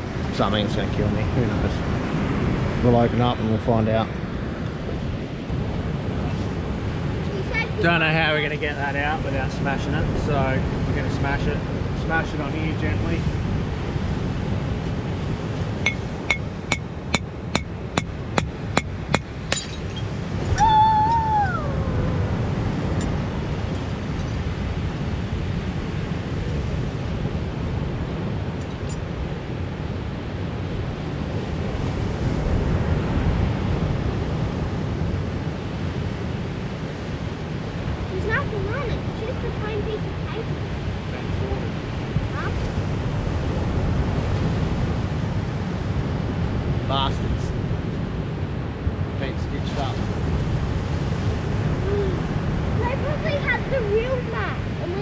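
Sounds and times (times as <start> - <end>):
surf: 0.0 - 55.0
hammer clinking on glass bottle: 15.9 - 18.1, 19.2 - 20.1
bottle breaking: 19.5 - 20.1.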